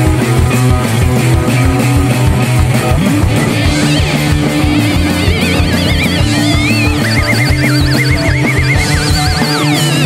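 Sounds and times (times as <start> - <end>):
blues-rock band playing: 0.0 - 10.0
lead line with fast vibrato: 3.2 - 10.0.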